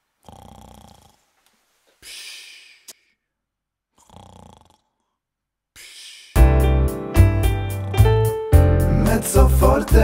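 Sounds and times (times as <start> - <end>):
person snoring: 0.2 - 1.3, 3.9 - 5.2.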